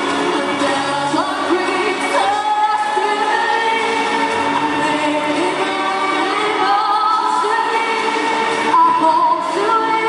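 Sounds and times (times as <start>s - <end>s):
music: 0.0s - 10.0s
girl singing into microphone: 0.3s - 3.9s, 4.6s - 10.0s.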